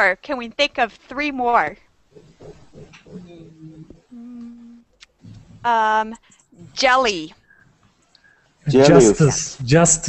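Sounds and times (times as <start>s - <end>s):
person humming: 2.2s - 5.4s.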